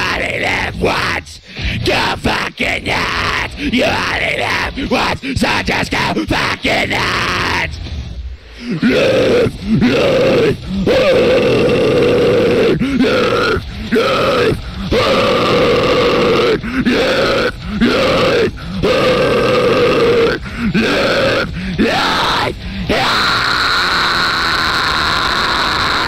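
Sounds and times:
distorted heavy metal guitar chugs: 0.0 - 26.0.

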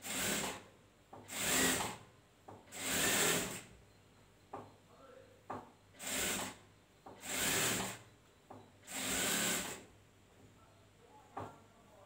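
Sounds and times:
sewing machine stitching: 8.8 - 9.8.

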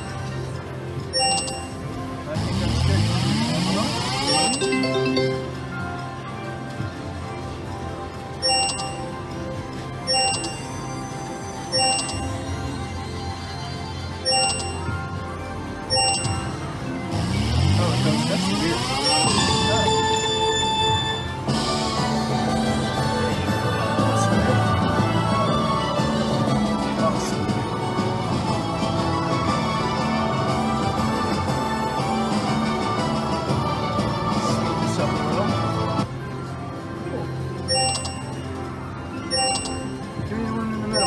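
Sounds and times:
slot machine reel-stop chime: 1.0 - 2.0, 3.0 - 6.1, 8.3 - 9.4, 10.0 - 12.6, 14.2 - 21.9, 37.6 - 40.2, 40.8 - 41.0
held chime tones: 1.1 - 1.8, 4.2 - 5.8, 8.4 - 9.1, 10.1 - 10.8, 11.7 - 12.4, 14.2 - 14.9, 15.9 - 16.6, 18.9 - 20.7, 37.7 - 38.4, 39.3 - 40.0
win jingle: 1.1 - 1.8, 4.2 - 6.1, 8.4 - 9.2, 10.1 - 10.7, 11.7 - 12.4, 14.2 - 15.0, 15.9 - 16.6, 18.8 - 20.2, 37.7 - 38.5, 39.3 - 41.0
rising electronic sweeping tones: 2.7 - 5.7, 15.9 - 21.8.

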